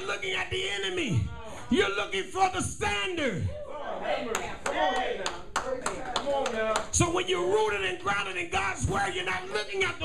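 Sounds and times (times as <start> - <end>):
hand clapping in steady rhythm: 4.3 - 7.0.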